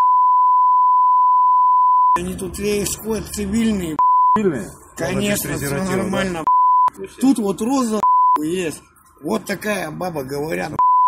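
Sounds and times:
electronic censor beep: 0:00.0 - 0:02.2, 0:04.0 - 0:04.4, 0:06.5 - 0:07.0, 0:08.0 - 0:08.4, 0:10.8 - 0:11.0.

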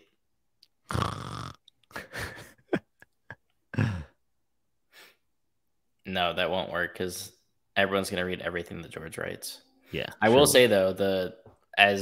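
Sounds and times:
person laughing: 0:01.9 - 0:04.1.

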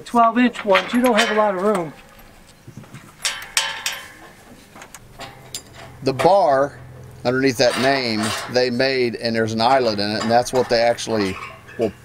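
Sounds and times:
low steady hum: 0:00.0 - 0:12.0
metal knocks and clinks: 0:00.4 - 0:08.9, 0:09.6 - 0:12.0.

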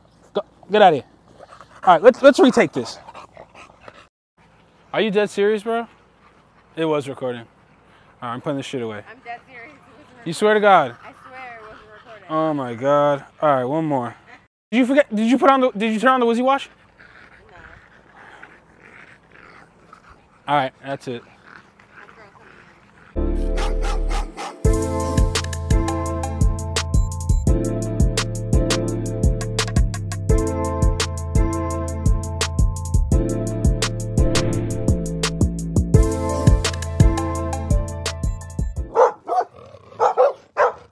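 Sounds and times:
dog panting: 0:01.0 - 0:14.5, 0:15.2 - 0:25.6
music with steady drum beat: 0:24.6 - 0:38.9
dog barking: 0:38.9 - 0:40.9.

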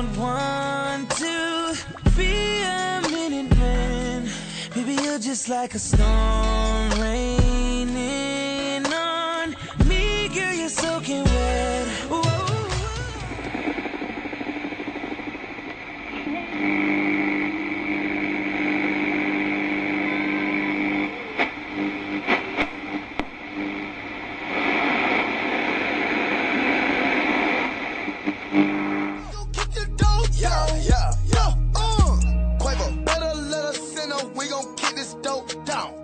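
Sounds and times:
music: 0:00.0 - 0:13.8, 0:29.2 - 0:36.0
steady low hum: 0:12.9 - 0:32.1.

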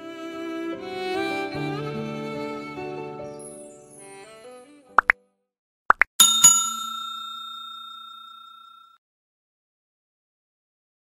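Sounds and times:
bell-like ding: 0:06.2 - 0:09.0.

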